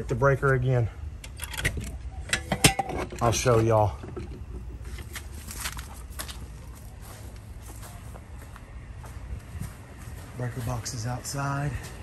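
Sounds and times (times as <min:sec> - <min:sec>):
footsteps on grass: 0:04.8 - 0:12.0.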